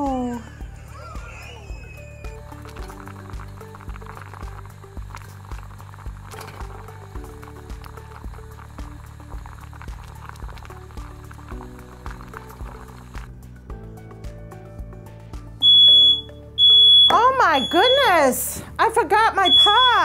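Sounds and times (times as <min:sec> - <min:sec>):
music with steady beat: 0:02.0 - 0:17.8
smoke alarm beep: 0:15.6 - 0:18.4, 0:19.4 - 0:20.0.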